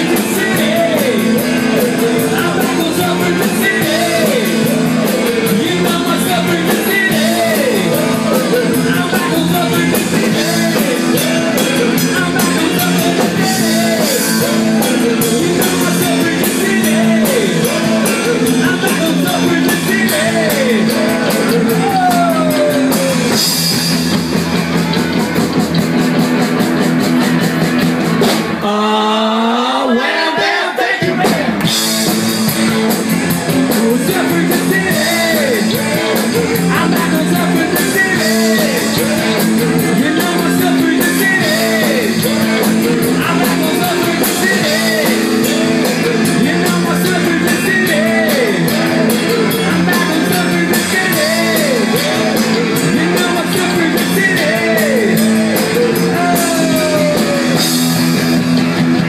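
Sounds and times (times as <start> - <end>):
person singing: 0.0 - 24.1, 28.6 - 58.0
drum kit: 0.0 - 28.9, 30.9 - 59.0
electric guitars: 0.0 - 28.9, 31.0 - 59.0
bass guitar: 0.0 - 29.2, 30.9 - 59.0.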